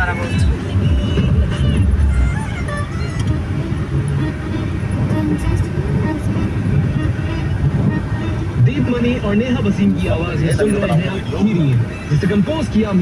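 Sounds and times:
music in car: 0.0s - 12.8s
car engine and road noise: 0.0s - 13.0s
voices: 0.0s - 13.0s.

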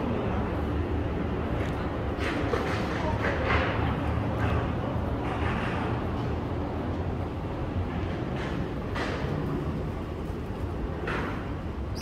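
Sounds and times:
low rumble of background noise: 0.0s - 12.0s.

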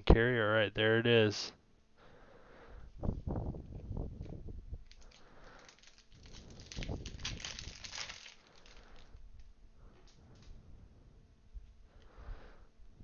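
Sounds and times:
pack wrapper crinkling: 4.8s - 9.5s.

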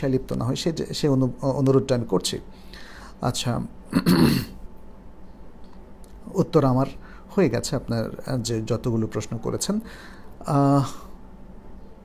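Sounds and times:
man clearing his throat: 3.9s - 4.6s.

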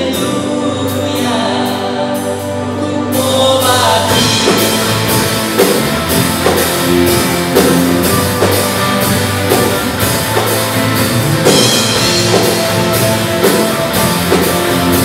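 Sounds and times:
electric guitars: 0.0s - 15.0s
drum kit steady beat: 3.2s - 15.0s.

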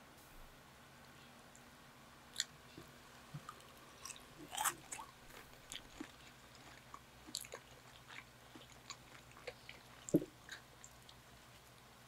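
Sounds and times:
electric fan hum: 0.0s - 12.0s
person chewing and biting: 3.5s - 11.7s.

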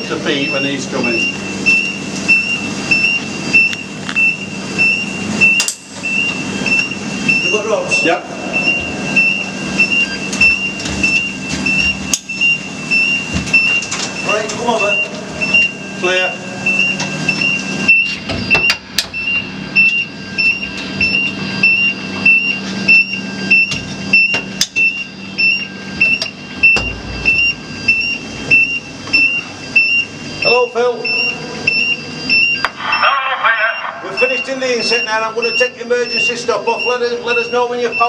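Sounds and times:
electronic warning beeper: 0.0s - 38.0s
man's voice: 32.8s - 38.0s.

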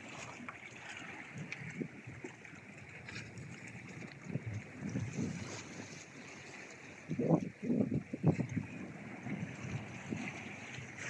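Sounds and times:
waves lapping against rocks: 0.0s - 11.0s
wind bumps on microphone: 4.2s - 6.0s, 7.1s - 11.0s.

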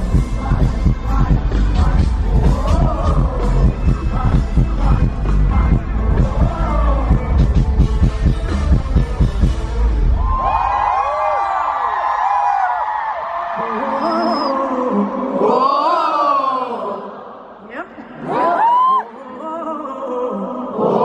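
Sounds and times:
live pop music with bass beat: 0.0s - 11.4s
crowd screaming and cheering: 8.5s - 16.6s, 18.1s - 19.5s.

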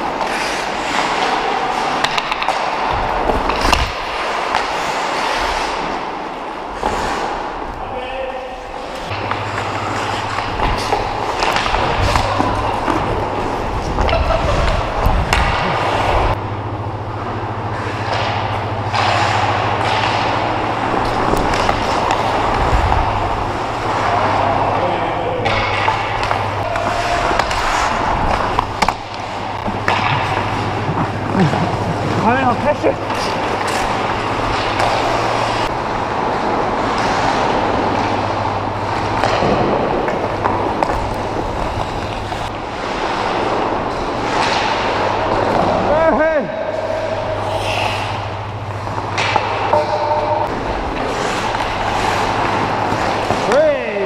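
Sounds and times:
hockey sticks and puck clacking: 0.0s - 7.8s, 8.7s - 16.4s, 17.2s - 54.0s
skates scraping ice: 0.0s - 16.4s, 17.7s - 54.0s
steady low hum: 0.0s - 54.0s
players calling out: 23.1s - 35.6s.

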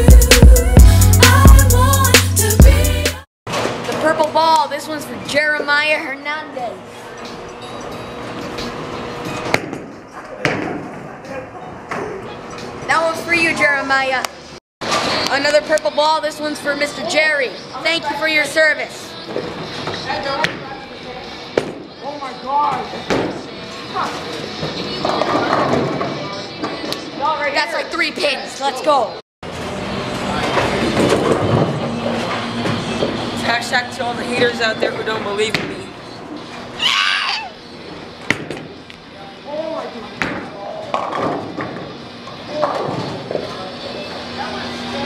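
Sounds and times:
bowling alley background noise: 3.5s - 45.0s.

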